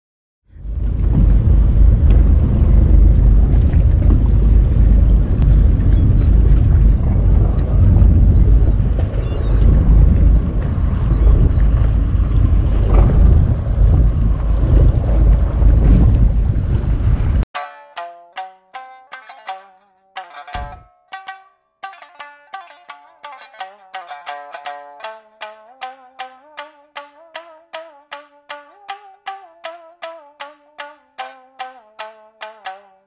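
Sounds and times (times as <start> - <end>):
wind and sea rumble: 0.5 - 17.5
plucked-string music: 17.5 - 33.0.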